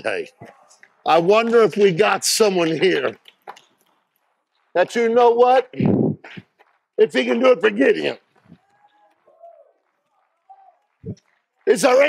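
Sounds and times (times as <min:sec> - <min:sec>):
preacher speaking: 0:00.0 - 0:03.2, 0:04.7 - 0:06.0, 0:07.0 - 0:08.3, 0:11.6 - 0:12.0.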